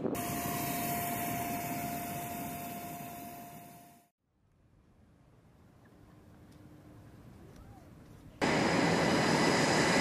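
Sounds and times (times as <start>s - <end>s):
turbine engine roaring: 0.0s - 3.8s, 8.4s - 10.0s
high engine whine: 0.0s - 4.1s, 8.4s - 10.0s.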